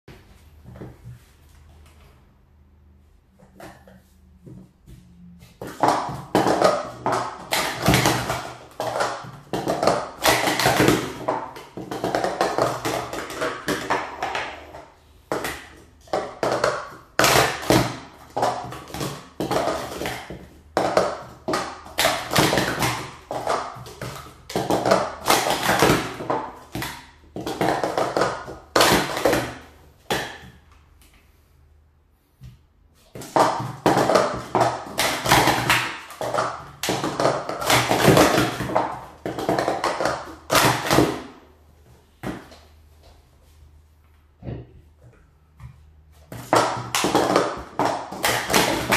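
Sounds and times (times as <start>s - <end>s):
plastic cups clattering: 3.4s - 31.0s, 33.0s - 41.5s, 44.5s - 48.9s.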